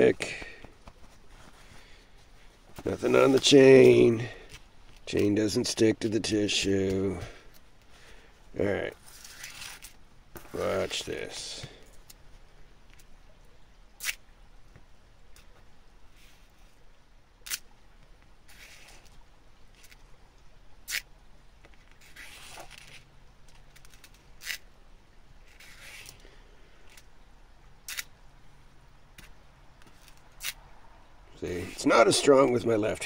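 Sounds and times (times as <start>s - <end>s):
soft hisses: 0.0s - 13.1s, 15.4s - 17.6s, 27.8s - 33.0s.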